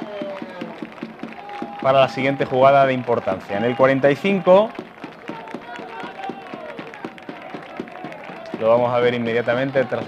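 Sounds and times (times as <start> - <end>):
scattered clapping: 0.0 - 10.0.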